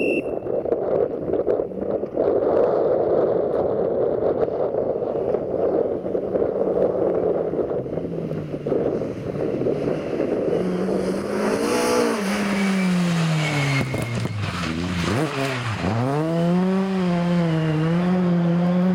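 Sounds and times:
rally car engine revving: 0:02.2 - 0:18.9.

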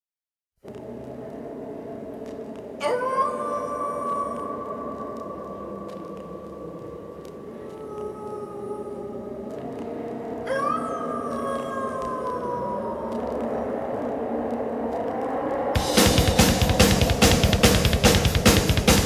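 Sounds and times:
low steady drone: 0:12.6 - 0:19.0.

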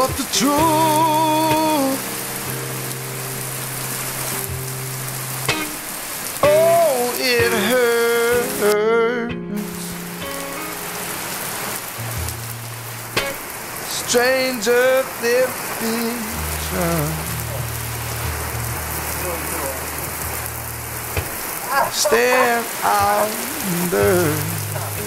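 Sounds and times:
person singing: 0:00.0 - 0:02.3, 0:06.4 - 0:10.1, 0:13.9 - 0:17.7, 0:21.7 - 0:25.0
heavy rain hissing: 0:00.0 - 0:09.0, 0:09.6 - 0:25.0.

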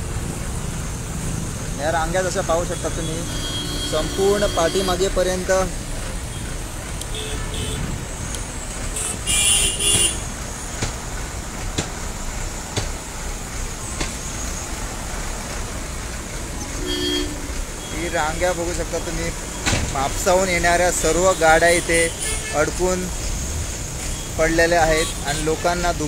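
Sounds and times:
idling vehicle engines rumbling: 0:00.0 - 0:26.0
vehicle horn blasts: 0:03.2 - 0:05.1, 0:07.1 - 0:07.9, 0:09.0 - 0:10.3, 0:16.8 - 0:18.0
faint horn toots: 0:16.7 - 0:17.5.

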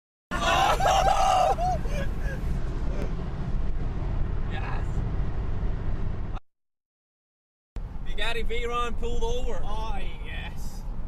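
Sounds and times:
car road and engine rumble: 0:00.3 - 0:06.4, 0:07.8 - 0:11.0.

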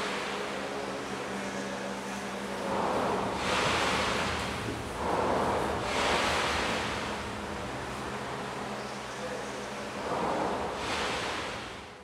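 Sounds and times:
filtered white noise swells: 0:00.0 - 0:12.0.

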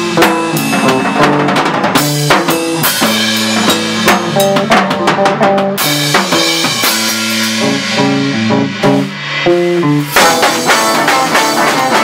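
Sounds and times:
drum kit: 0:00.0 - 0:12.0
electric bass riff: 0:00.0 - 0:12.0.

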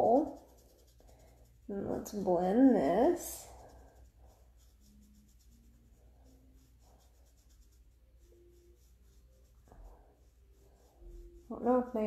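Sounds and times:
makeup brush brushing face: 0:00.0 - 0:12.0.

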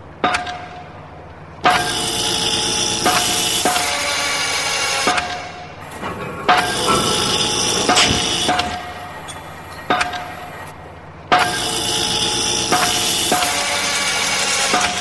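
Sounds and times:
heavy metallic clanging hits: 0:05.8 - 0:10.6
harsh ringing metallic noise: 0:05.8 - 0:10.7.

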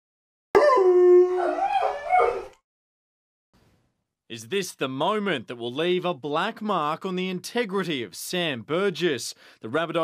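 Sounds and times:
dog howling: 0:00.6 - 0:02.6.

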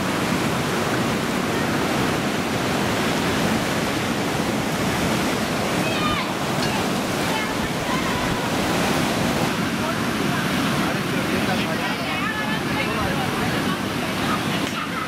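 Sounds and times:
heavy surf breaking: 0:00.0 - 0:15.0
faint distant voices: 0:05.8 - 0:15.0.

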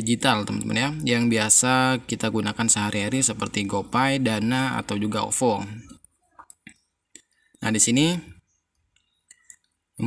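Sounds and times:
man speaking: 0:00.0 - 0:06.0, 0:07.6 - 0:08.4.

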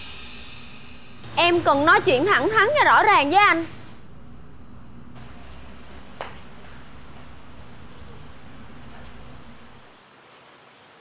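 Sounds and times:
low hum: 0:00.0 - 0:09.9
background hiss: 0:00.0 - 0:10.2.

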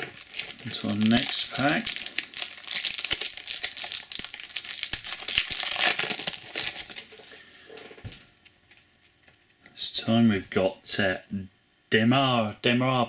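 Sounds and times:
foil wrapper crinkling: 0:00.0 - 0:07.5.

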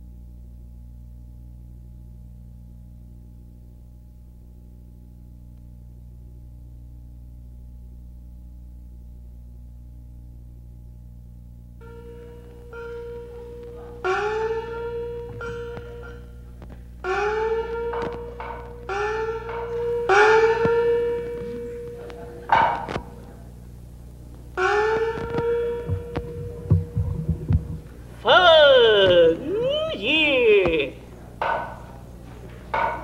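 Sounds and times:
small gong strikes rising in pitch: 0:11.8 - 0:23.4, 0:24.6 - 0:31.9
sharp knocks: 0:17.1 - 0:21.4, 0:22.5 - 0:23.1, 0:24.6 - 0:28.0, 0:31.4 - 0:31.9, 0:32.7 - 0:33.0
low drum thuds: 0:25.6 - 0:28.3
person intoning: 0:28.2 - 0:31.0.

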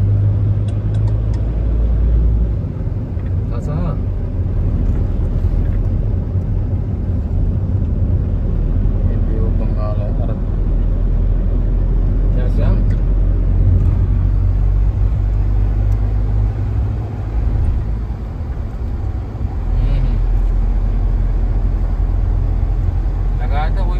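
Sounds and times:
car engine and tyre rumble: 0:00.0 - 0:23.9.

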